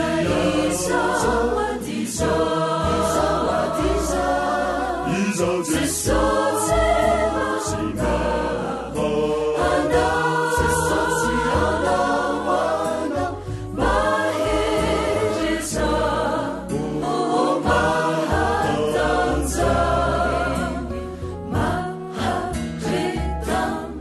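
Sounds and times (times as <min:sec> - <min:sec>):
choir singing: 0:00.0 - 0:24.0
instrumental backing with bass: 0:00.0 - 0:24.0.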